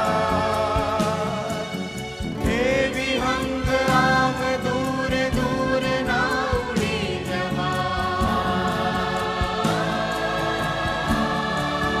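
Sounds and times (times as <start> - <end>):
choir singing: 0.0 - 12.0
drum beat: 0.0 - 12.0.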